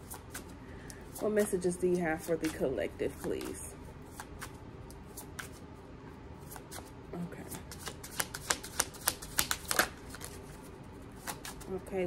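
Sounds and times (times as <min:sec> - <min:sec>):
cards shuffled by hand: 0:02.2 - 0:05.6, 0:07.5 - 0:11.7.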